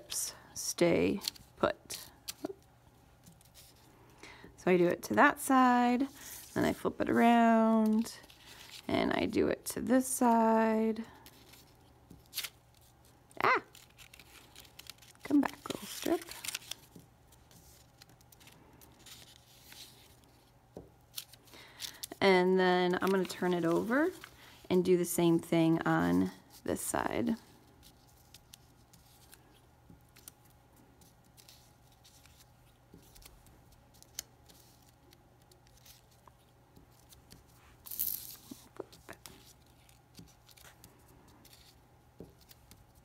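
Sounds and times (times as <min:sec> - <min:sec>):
paper rustling: 0:11.2 - 0:20.5, 0:27.3 - 0:43.0.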